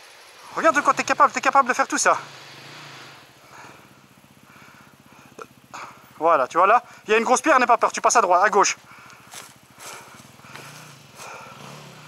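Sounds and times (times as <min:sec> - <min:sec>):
motorcycle engine idling putter: 0:00.0 - 0:12.0.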